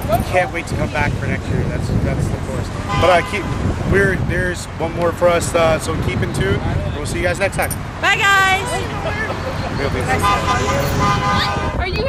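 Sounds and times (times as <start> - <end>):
passing road traffic: 0.0 - 12.0.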